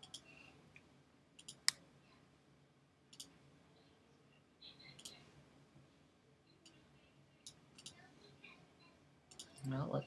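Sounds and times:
computer mouse clicking: 1.4 - 1.8, 3.1 - 3.4, 5.0 - 5.2, 7.4 - 8.0, 9.3 - 9.8.

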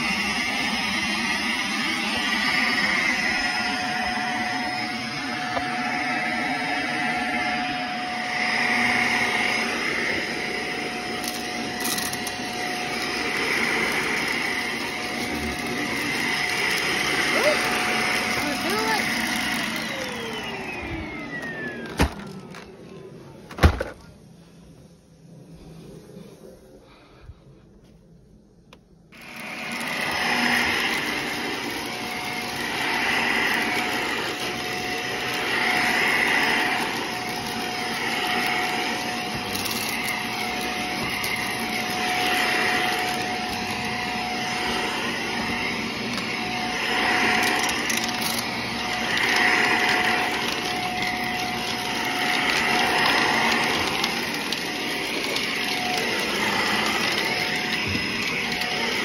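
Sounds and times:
vacuum cleaner running on carpet: 0.0 - 27.9, 29.1 - 59.0.

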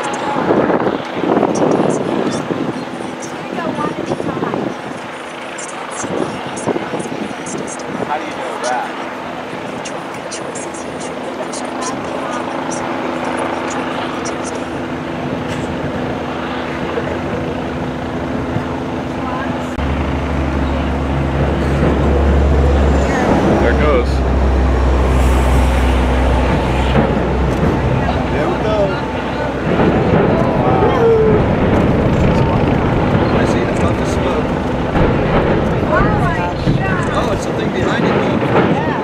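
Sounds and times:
faint voices: 0.0 - 39.0
machinery hum: 8.5 - 38.5
deep low rumble: 12.1 - 38.8.

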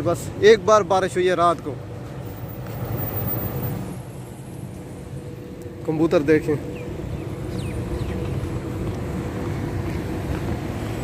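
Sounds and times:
passing vehicle engine and tyres: 0.0 - 11.0.

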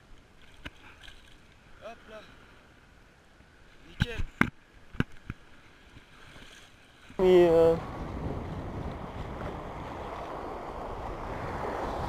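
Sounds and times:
shallow sea water washing: 7.6 - 12.0.

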